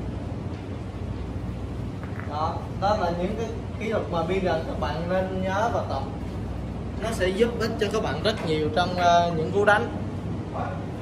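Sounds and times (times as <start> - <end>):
low room hum and rumble: 0.0 - 11.0.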